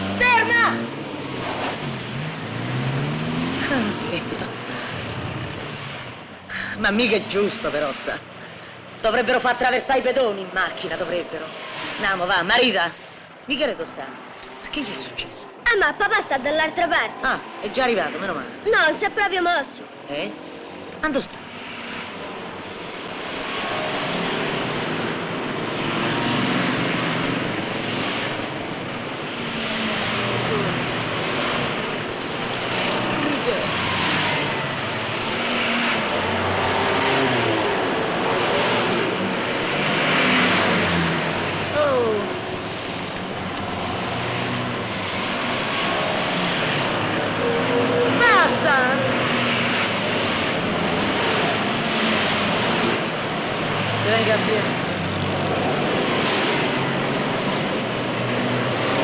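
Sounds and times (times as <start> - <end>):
car engines passing: 0.0 - 59.0.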